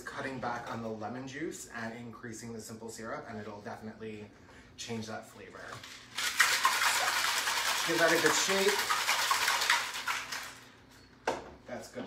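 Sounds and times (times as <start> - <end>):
cocktail shaker rattling: 6.1 - 10.6.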